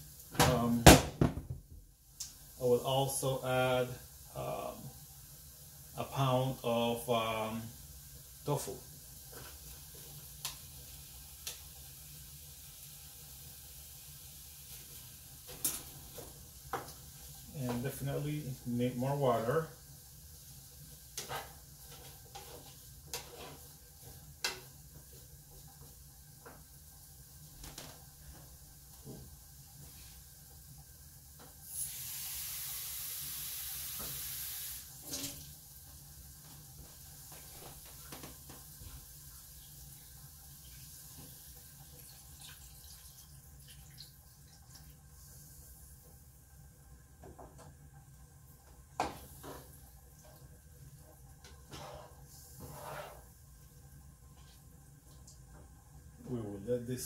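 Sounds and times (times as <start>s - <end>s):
spatula scraping a frying pan: 51.7s - 53.3s.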